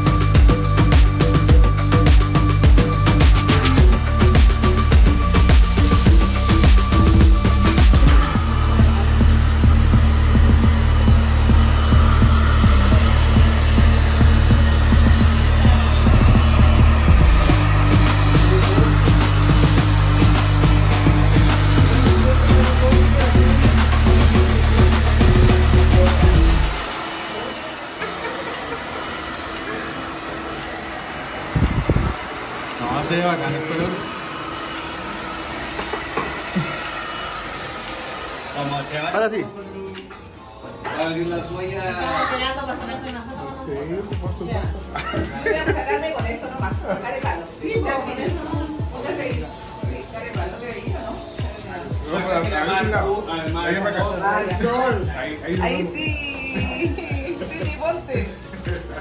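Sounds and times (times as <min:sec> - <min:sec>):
background music with beat: 0:00.0 - 0:27.0, 0:43.1 - 0:59.0
hair dryer blowing: 0:00.0 - 0:39.3, 0:45.2 - 0:59.0.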